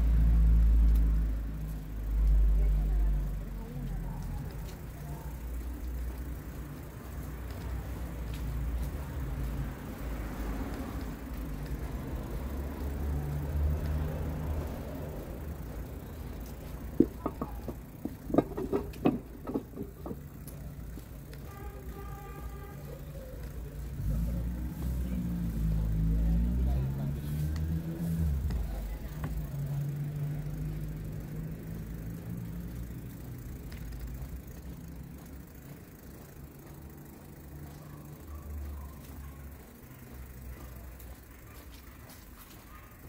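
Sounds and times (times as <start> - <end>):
vehicle engine passing: 0.0 - 42.9.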